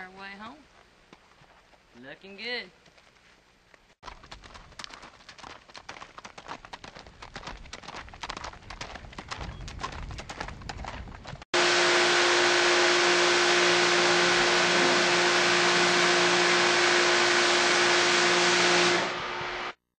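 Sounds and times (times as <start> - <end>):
horse hoofbeats on dirt: 2.7 - 11.4
loud steady hiss: 11.6 - 19.8.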